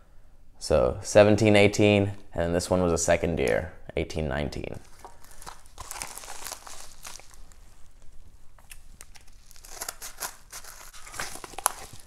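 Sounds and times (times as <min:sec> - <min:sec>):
packaging crinkling and rustling: 0:04.8 - 0:12.0.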